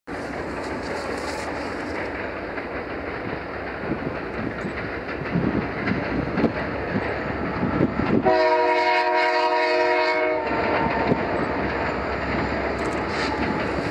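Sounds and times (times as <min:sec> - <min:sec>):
freight train rumbling: 0:00.0 - 0:13.9
train wheels knocking on rails: 0:00.1 - 0:13.9.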